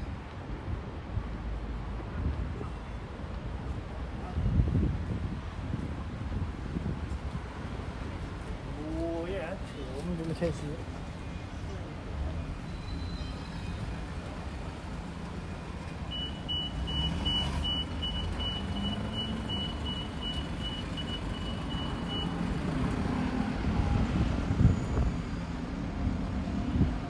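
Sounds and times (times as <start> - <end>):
road traffic rumble: 0.0 - 27.0
vehicle reversing beeper: 16.1 - 22.5.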